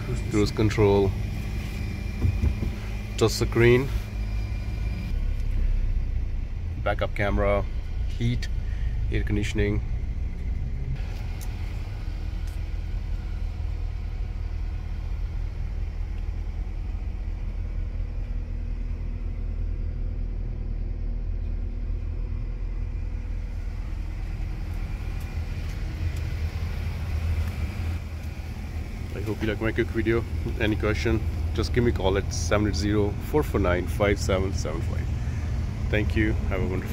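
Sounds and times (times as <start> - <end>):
van engine idling: 0.0 - 36.9.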